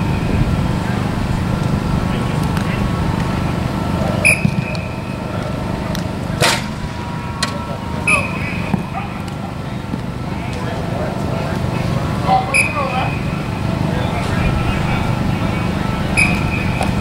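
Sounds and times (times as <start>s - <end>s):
distant voices: 0.0s - 17.0s
short whistle blast: 4.2s - 5.0s, 8.1s - 8.7s, 16.2s - 16.8s
sharp smack: 6.4s - 6.7s.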